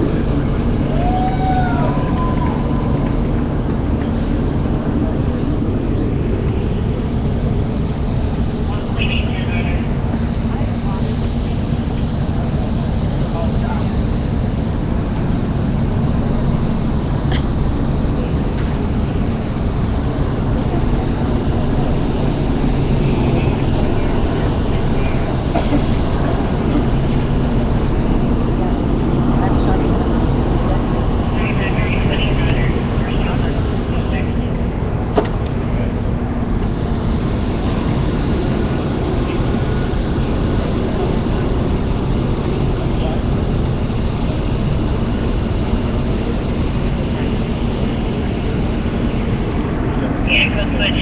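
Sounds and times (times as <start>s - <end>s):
constant low hum: 0.0s - 51.0s
indistinct crowd voices: 0.0s - 51.0s
low engine-like rumble: 0.0s - 51.0s.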